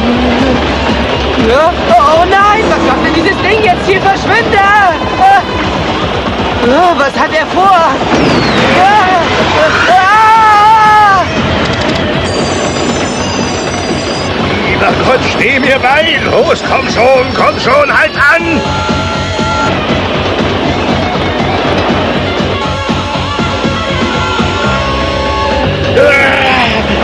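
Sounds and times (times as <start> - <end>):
dramatic music: 0.0 - 27.0
speeding train rumble: 0.0 - 27.0.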